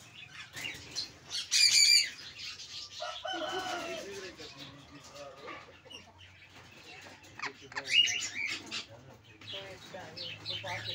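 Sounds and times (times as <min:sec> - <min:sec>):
parrots calling shrilly: 0:01.4 - 0:03.6.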